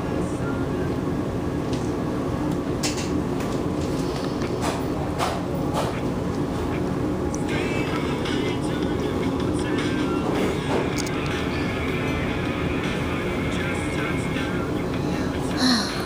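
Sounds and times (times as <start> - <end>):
constant hum: 0.0 - 16.0
music: 7.3 - 16.0.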